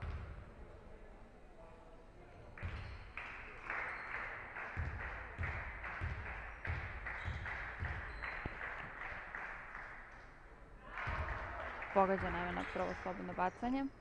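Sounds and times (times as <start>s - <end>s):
basketball bouncing on hardwood: 4.8s - 8.6s.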